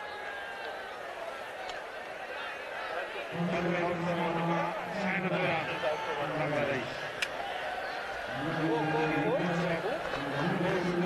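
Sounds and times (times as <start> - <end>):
man talking: 3.3 - 7.0, 8.3 - 11.0.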